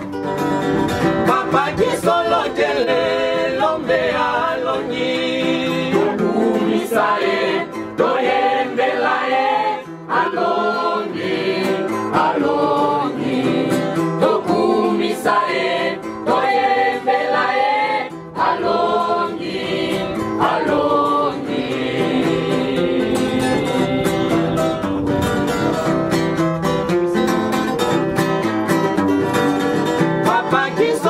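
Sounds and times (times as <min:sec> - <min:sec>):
choir singing a hymn: 0:01.2 - 0:24.6, 0:30.3 - 0:31.0.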